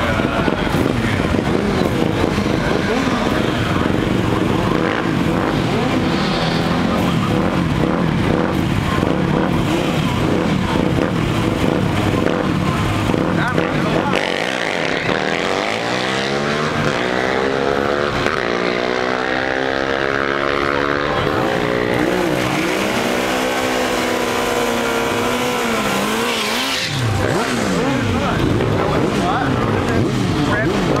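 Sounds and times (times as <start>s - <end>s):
motorcycle engine revving: 0.0s - 31.0s.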